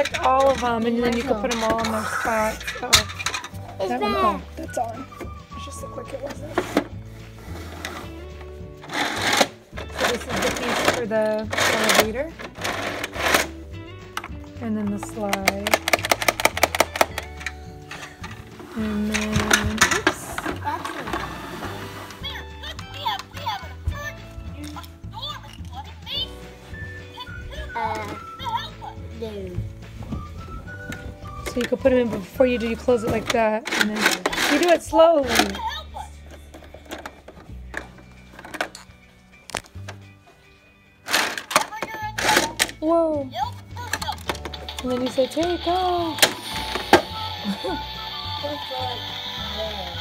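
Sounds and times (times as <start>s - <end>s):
background music: 0.0s - 50.0s
hard plastic toy clicks: 15.3s - 17.6s.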